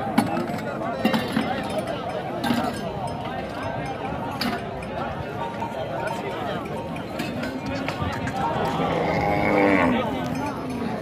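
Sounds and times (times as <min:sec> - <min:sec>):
cow mooing: 0:08.8 - 0:10.1.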